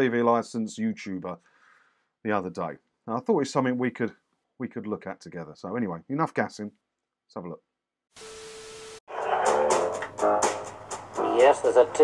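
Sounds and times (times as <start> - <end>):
static hiss: 8.2 - 9.0.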